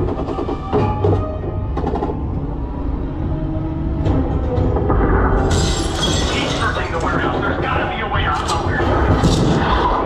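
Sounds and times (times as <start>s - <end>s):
dramatic music: 0.0s - 10.0s
crashing glass shattering: 5.4s - 7.1s.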